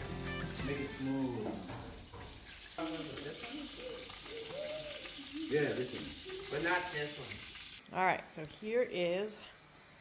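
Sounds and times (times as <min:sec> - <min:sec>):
food sizzling in a frying pan: 0:00.0 - 0:07.8.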